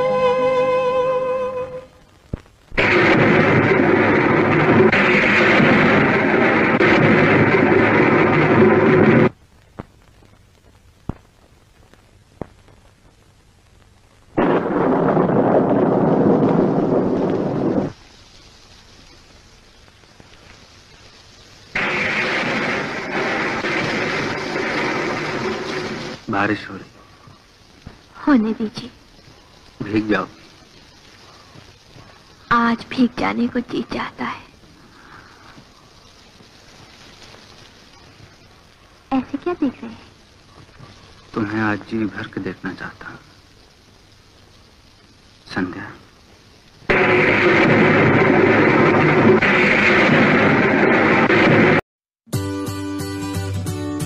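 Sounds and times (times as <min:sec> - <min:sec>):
heavy rain pouring: 0:00.0 - 0:51.8.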